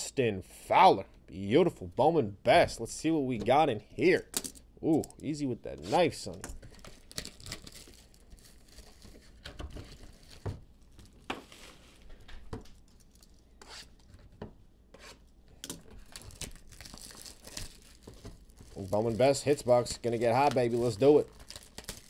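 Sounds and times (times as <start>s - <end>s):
plastic shrink wrap crinkling: 6.3s - 13.5s, 15.8s - 22.0s.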